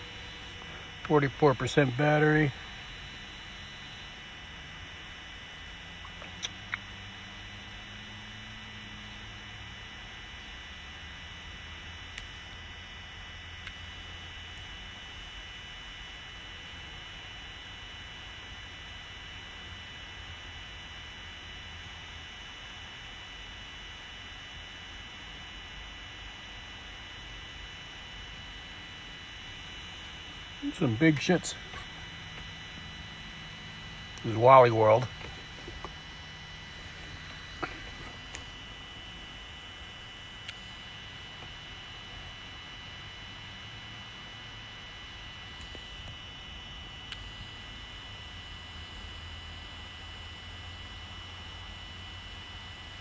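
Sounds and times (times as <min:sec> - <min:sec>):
faint low hum: 0:00.0 - 0:53.0.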